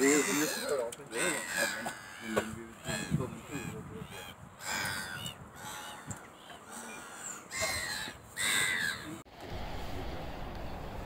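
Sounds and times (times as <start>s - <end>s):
gulls calling: 0.0s - 9.2s
low steady rumble: 9.3s - 11.0s.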